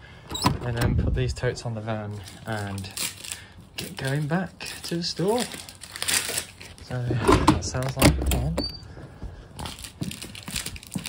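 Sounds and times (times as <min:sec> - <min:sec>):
crumpled paper crinkling: 0:02.1 - 0:07.1, 0:09.6 - 0:11.0.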